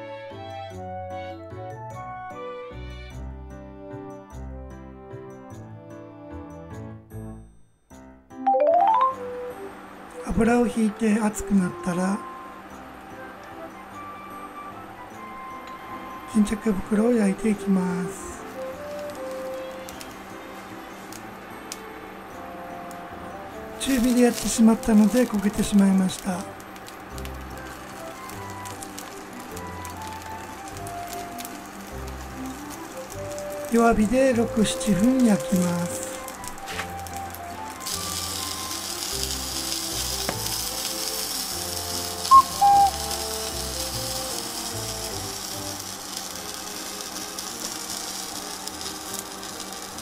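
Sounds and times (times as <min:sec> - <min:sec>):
soft background music: 0:00.0 - 0:50.0
tofu sizzling in hot oil: 0:17.8 - 0:50.0
oil popping: 0:36.3 - 0:50.0
loud chime tones: 0:42.3 - 0:43.1.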